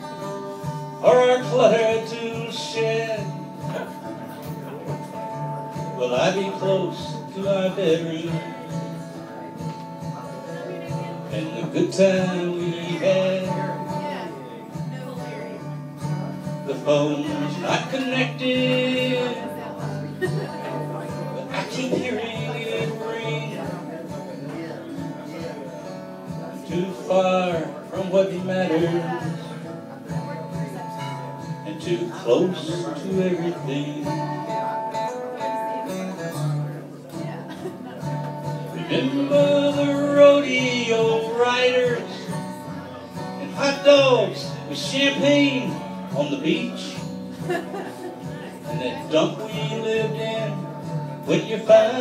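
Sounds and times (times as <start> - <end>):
acoustic guitar strumming: 0.0 - 52.0.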